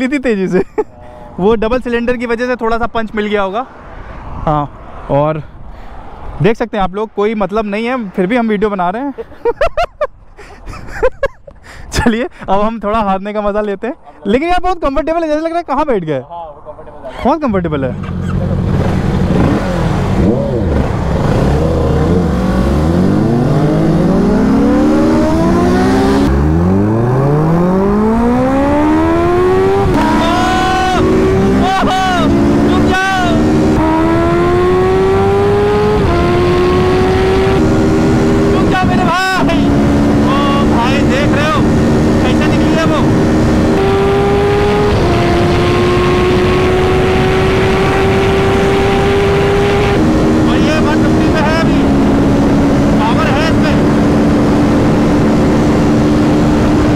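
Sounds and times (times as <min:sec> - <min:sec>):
wind rushing: 0:03.6 - 0:08.1, 0:18.6 - 0:56.9
motorcycle engine accelerating: 0:17.9 - 0:56.9.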